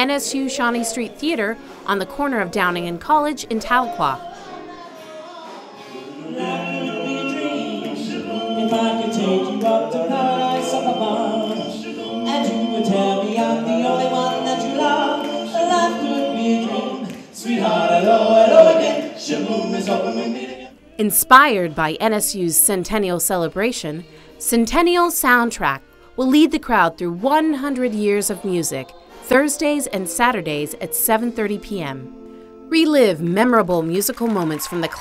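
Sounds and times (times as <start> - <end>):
male vocal group singing a cappella: 3.8 - 21.8, 27.8 - 31.1.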